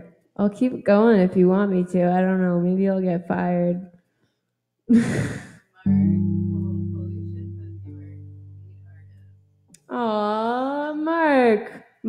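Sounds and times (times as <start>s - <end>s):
person laughing: 4.9s - 6.2s
electric guitar chord ringing: 5.9s - 9.1s.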